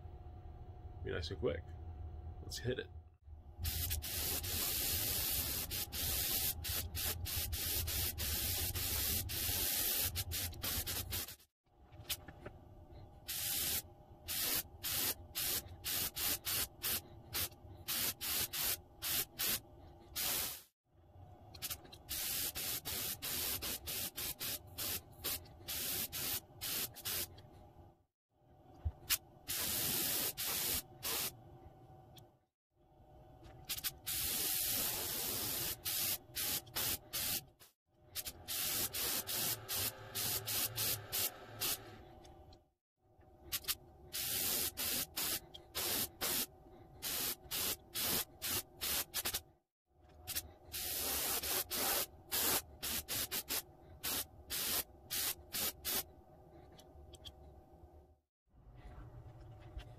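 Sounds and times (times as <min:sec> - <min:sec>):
airbrush spraying hiss: 0:03.6 - 0:11.5, 0:13.3 - 0:19.6, 0:20.2 - 0:20.8, 0:21.6 - 0:27.3, 0:29.0 - 0:31.3, 0:33.7 - 0:37.6, 0:38.2 - 0:41.9, 0:43.5 - 0:49.4, 0:50.3 - 0:56.0.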